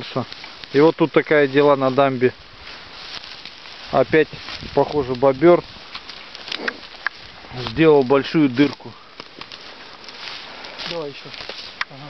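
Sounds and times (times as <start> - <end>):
man talking: 0.0 - 2.4, 3.9 - 5.7, 7.5 - 9.1, 10.8 - 12.0
light rustling: 0.0 - 12.0
outdoor background hiss: 0.0 - 12.0
faint clicks: 5.9 - 7.2.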